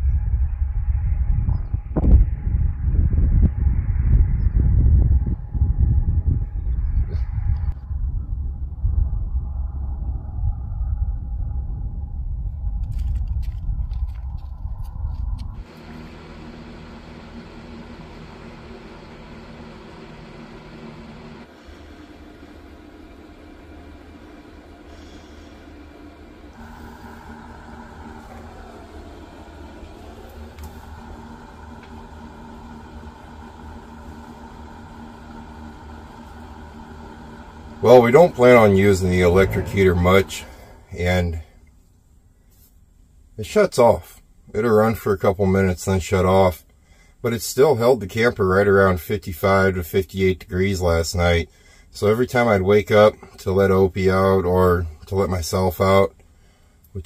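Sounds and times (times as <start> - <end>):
strong wind on microphone: 0.0 - 15.7
steady hum: 0.0 - 57.0.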